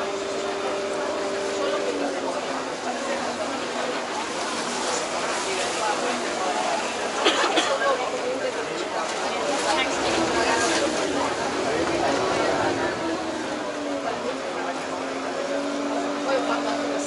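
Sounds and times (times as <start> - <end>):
boat engine drone: 0.0 - 17.0
passengers talking: 0.0 - 17.0
water rushing: 0.0 - 17.0
wind: 0.0 - 17.0.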